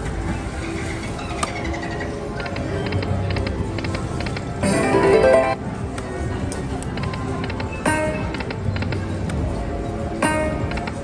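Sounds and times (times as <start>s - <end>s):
slot machine game music: 4.5s - 5.8s, 7.8s - 9.1s, 10.1s - 11.0s.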